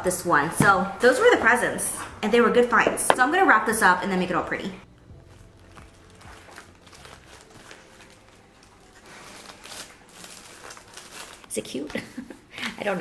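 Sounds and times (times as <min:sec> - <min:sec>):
paper rustling: 0:05.3 - 0:12.2.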